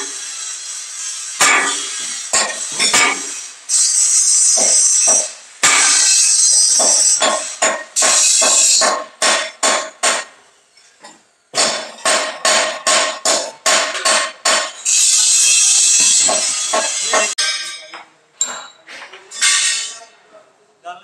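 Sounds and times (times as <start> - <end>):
loud steady hiss: 0.0 - 10.7, 11.6 - 17.4
hammer striking steel drum: 1.4 - 3.4, 4.6 - 10.4, 11.6 - 18.7.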